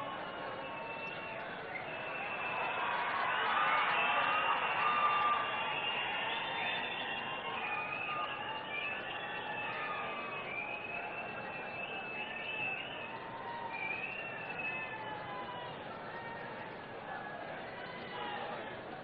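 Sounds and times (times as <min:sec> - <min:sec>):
crowd cheering: 0:00.0 - 0:19.0.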